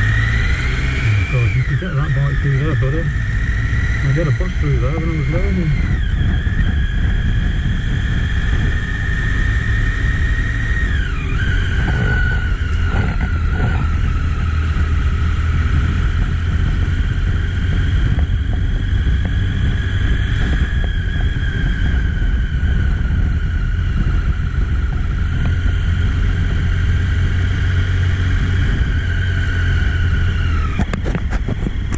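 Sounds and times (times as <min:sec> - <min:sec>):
high whine dropping in pitch: 0:00.0 - 0:31.9
motorcycle engine low rumble: 0:00.0 - 0:31.9.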